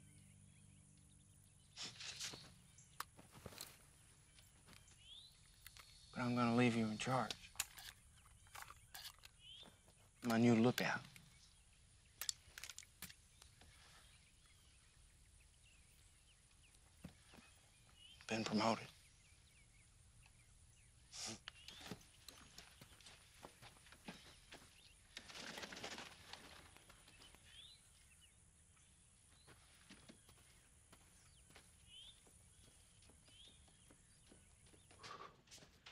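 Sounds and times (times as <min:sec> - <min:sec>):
small birds chirping: 0:00.0 - 0:35.9.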